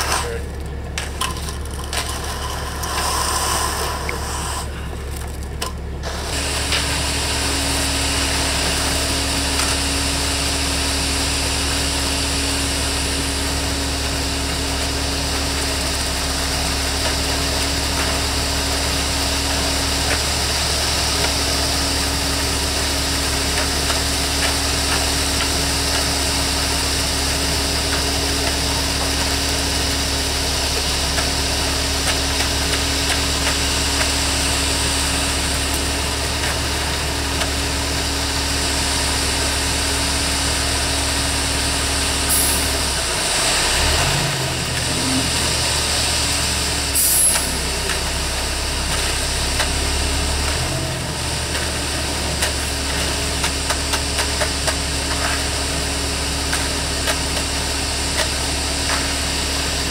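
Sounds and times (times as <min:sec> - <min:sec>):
concrete pouring down chute: 0:00.0 - 0:05.5, 0:06.1 - 0:59.9
diesel truck engine running: 0:00.0 - 0:59.9.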